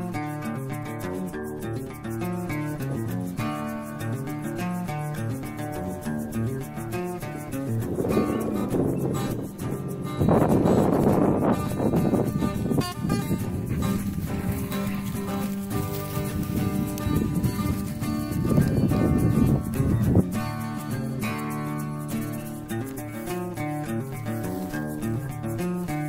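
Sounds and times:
acoustic guitar music: 0.0s - 26.0s.

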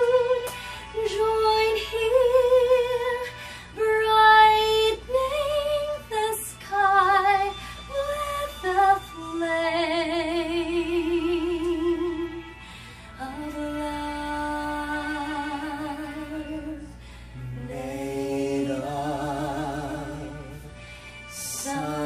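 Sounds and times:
woman singing a ballad: 0.0s - 17.8s.

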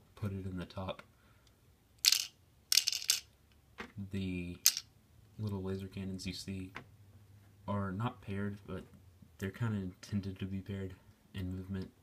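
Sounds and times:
plastic pieces clattering: 2.0s - 3.3s, 4.6s - 4.8s.

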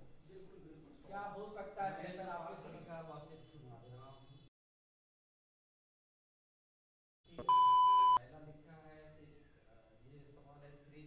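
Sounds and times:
high electronic beep: 7.4s - 8.2s.

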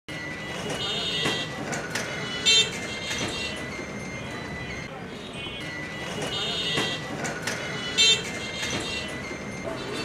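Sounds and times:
city traffic engines: 0.1s - 10.0s
vehicle horns tooting: 0.6s - 1.6s, 2.2s - 3.7s, 5.1s - 10.0s.

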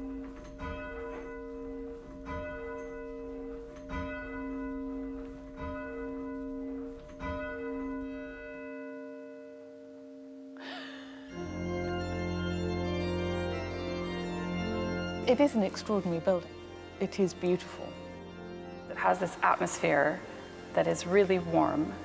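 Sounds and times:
church bell tolling: 0.0s - 10.6s, 11.2s - 22.0s.

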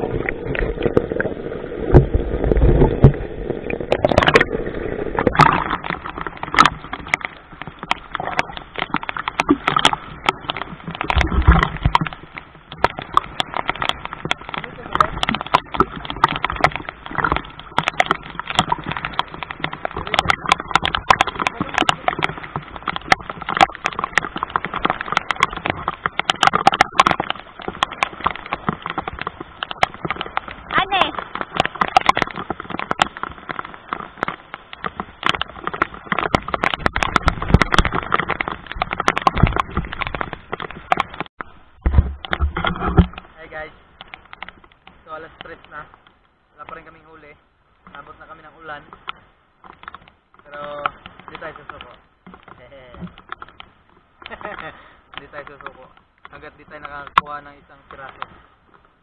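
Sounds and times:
low rumbling underwater: 0.0s - 59.0s
water splashing on camera housing: 0.0s - 59.0s
sharp crackling clicks: 0.5s - 59.0s.

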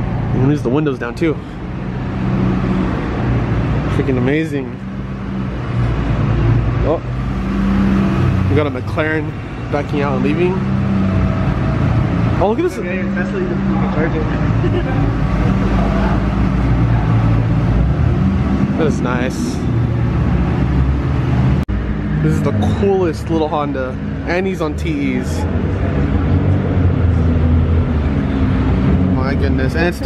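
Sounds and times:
car engine running: 0.0s - 30.0s.

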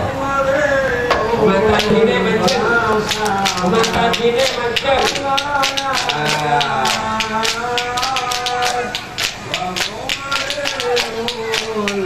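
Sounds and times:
devotional singing: 0.0s - 12.0s
hand percussion: 1.7s - 12.0s.

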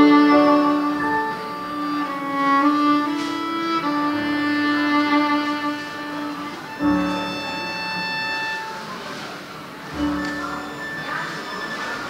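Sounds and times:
solo viola bowed melody: 0.0s - 11.3s.

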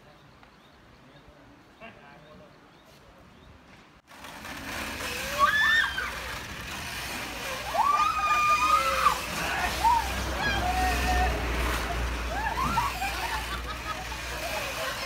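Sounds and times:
people calling out and squealing: 5.1s - 15.0s.

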